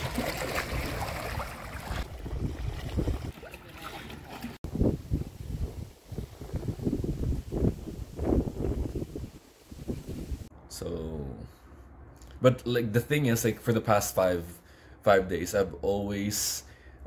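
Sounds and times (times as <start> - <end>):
water: 0.0 - 5.1
gusty wind buffeting: 2.0 - 3.3, 4.6 - 10.5
wind hissing on microphone: 4.7 - 10.5.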